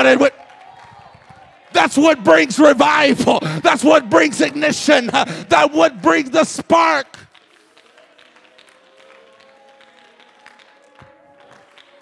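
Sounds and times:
hand claps: 0.4 - 1.8, 7.0 - 12.0
soft worship music: 1.2 - 12.0.

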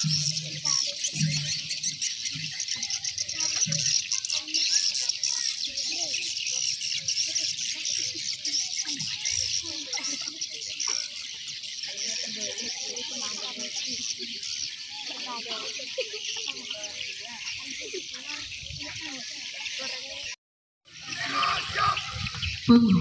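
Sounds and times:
high-pitched chirping: 0.0 - 12.8, 20.9 - 23.0
faint voices: 0.0 - 23.0.

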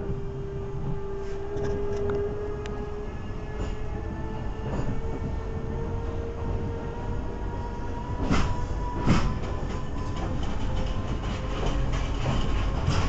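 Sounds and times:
train rumble: 0.0 - 13.0.

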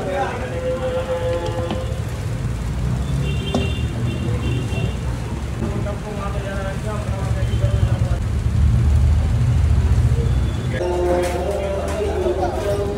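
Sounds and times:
voices: 0.0 - 2.3, 3.0 - 8.3, 9.0 - 12.9
street traffic rumble: 0.0 - 12.9.

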